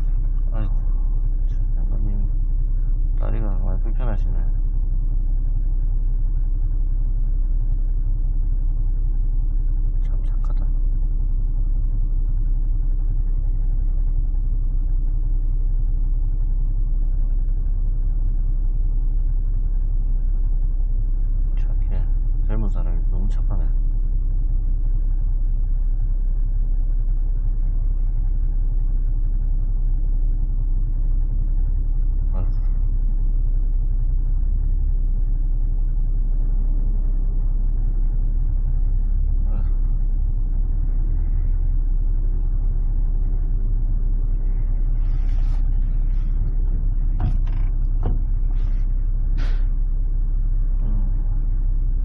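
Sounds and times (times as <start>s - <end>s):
diesel engine idling: 0.0s - 52.0s.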